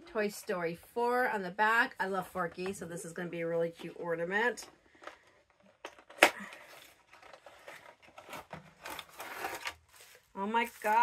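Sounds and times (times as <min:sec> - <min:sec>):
cardboard scraping and rustling: 0:06.7 - 0:11.0.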